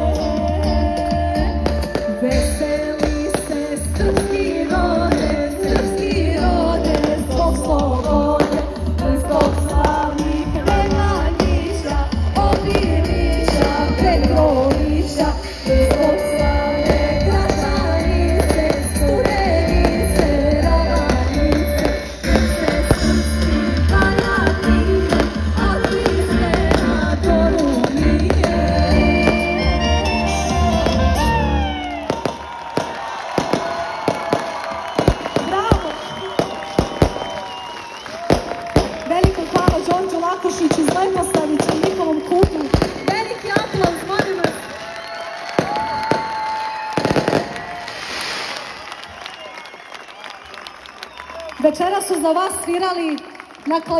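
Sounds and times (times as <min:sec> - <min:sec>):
loud live band music: 0:00.0 - 0:49.0
fireworks exploding: 0:01.6 - 0:50.2
heavy steady bass: 0:04.9 - 0:31.9
fireworks crackling hiss: 0:08.4 - 0:17.8, 0:21.0 - 0:29.5, 0:32.0 - 0:49.0.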